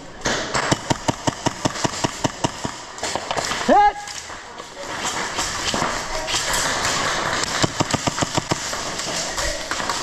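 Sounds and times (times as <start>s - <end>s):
airsoft gun firing: 0.3s - 3.8s, 5.1s - 9.2s.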